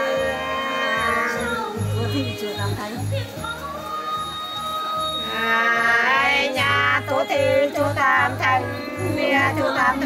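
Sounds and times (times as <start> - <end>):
women singing unaccompanied duet: 0.0 - 10.0
voice with wavering pitch: 8.0 - 10.0.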